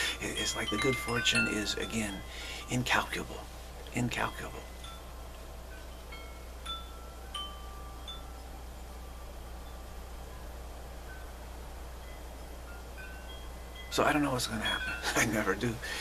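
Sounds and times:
steady low hum: 0:00.0 - 0:16.0
wind chimes ringing: 0:00.0 - 0:16.0.

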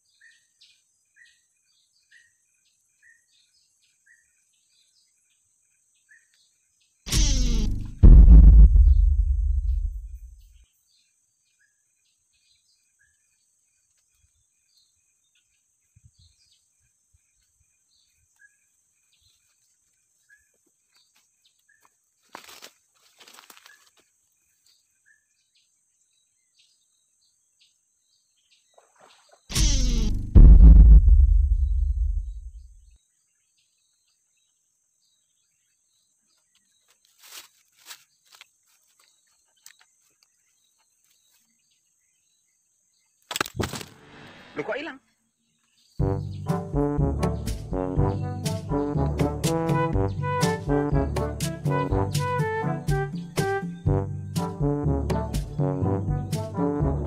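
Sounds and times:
loud low thump and rumble: 0:07.1 - 0:10.4, 0:29.6 - 0:32.7.

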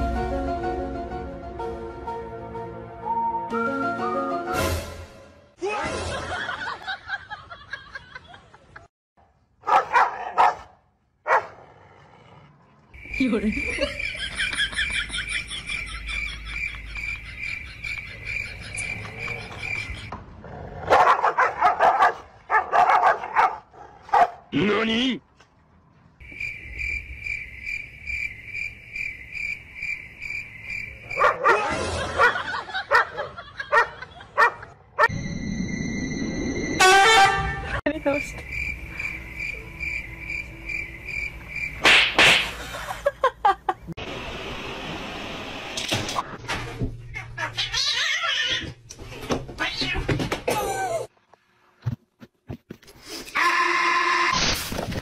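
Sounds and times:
dogs barking and snarling: 0:09.6 - 0:12.9, 0:18.2 - 0:24.5, 0:31.1 - 0:35.1.

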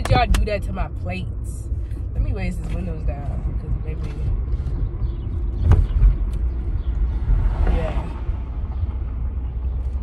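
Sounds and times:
car engine: 0:00.0 - 0:10.0.

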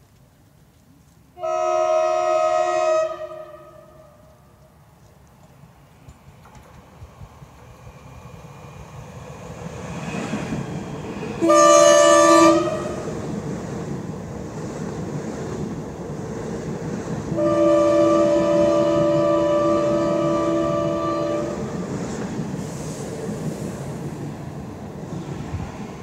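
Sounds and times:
train wheels rumbling on rail: 0:00.0 - 0:26.0
train horn blast: 0:01.4 - 0:04.4, 0:11.4 - 0:13.1, 0:17.3 - 0:21.7.

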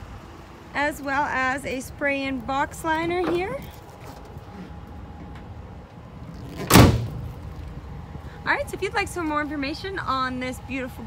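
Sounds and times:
tailgate slammed shut: 0:06.4 - 0:07.5.

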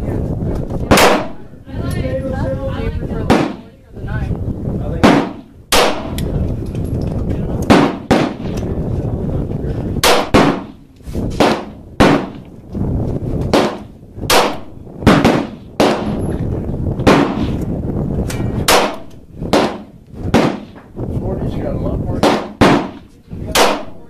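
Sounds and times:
pistol shots with echo: 0:00.9 - 0:01.5, 0:03.3 - 0:03.7, 0:05.0 - 0:06.3, 0:07.6 - 0:08.6, 0:10.0 - 0:10.8, 0:11.4 - 0:12.4, 0:13.5 - 0:16.3, 0:17.0 - 0:17.6, 0:18.6 - 0:20.8, 0:22.2 - 0:24.0.

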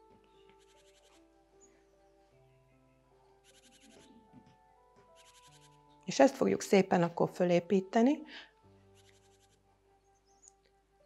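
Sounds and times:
slow relaxing background music: 0:00.0 - 0:11.0
high bird trills: 0:03.4 - 0:04.3, 0:05.2 - 0:06.0.

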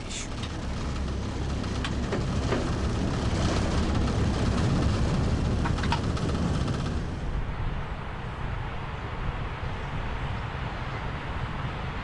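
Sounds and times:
locomotive cab rumble and hum: 0:00.0 - 0:07.6.

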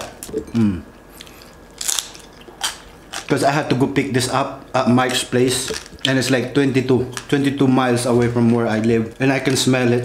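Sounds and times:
crispy skin crunching while chewed: 0:01.1 - 0:03.4.

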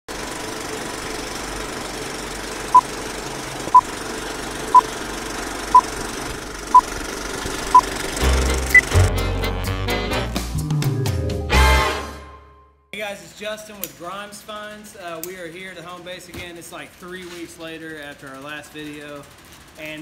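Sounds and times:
music with bass and drums: 0:08.2 - 0:12.0.

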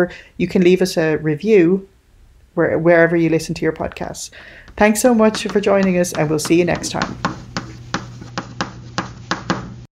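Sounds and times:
steady low hum: 0:01.9 - 0:09.9
sharp taps or clicks: 0:04.7 - 0:09.6.

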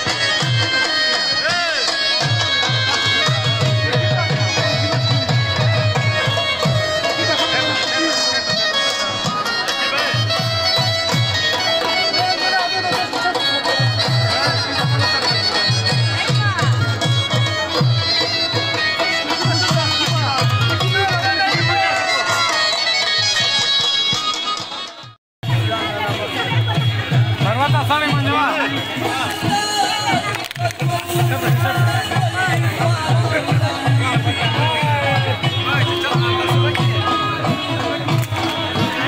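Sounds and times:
dhol drum beat: 0:00.0 - 0:39.0
shrill reed pipe melody: 0:00.0 - 0:39.0.

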